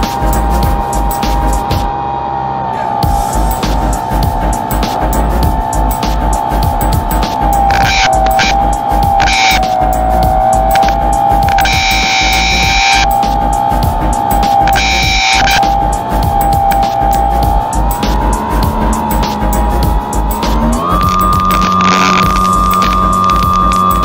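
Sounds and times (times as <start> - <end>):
higher buzz bursts: 0.0 - 2.2, 3.0 - 24.0
electric motor and propeller whine: 0.0 - 24.0.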